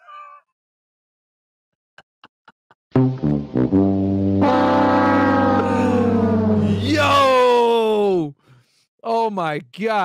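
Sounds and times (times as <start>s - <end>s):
horn-like tones: 3.2s - 7.3s
low drone: 4.4s - 7.1s.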